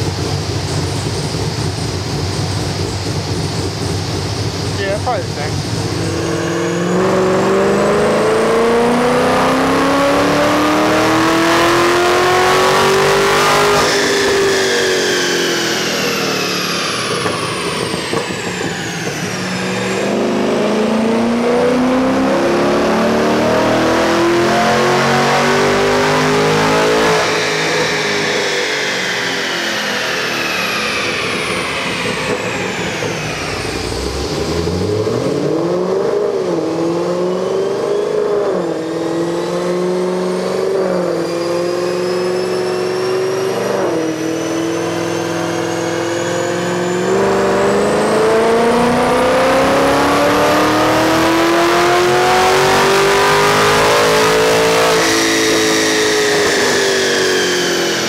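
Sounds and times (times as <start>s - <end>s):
car engine revving at full throttle: 0.0s - 58.0s
short engine revs: 4.4s - 58.0s.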